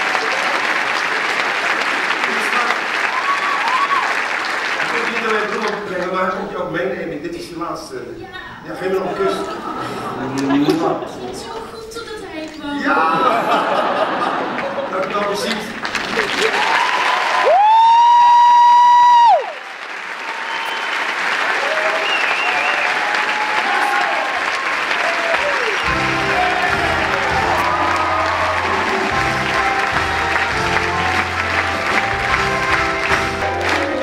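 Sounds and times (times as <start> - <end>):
audience applauding: 0.0 - 6.6, 13.2 - 34.0.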